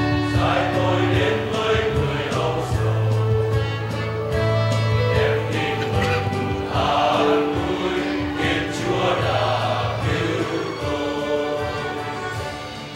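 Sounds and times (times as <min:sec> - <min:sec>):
choir singing long held notes: 0:00.0 - 0:12.9
instrumental accompaniment: 0:00.0 - 0:12.9.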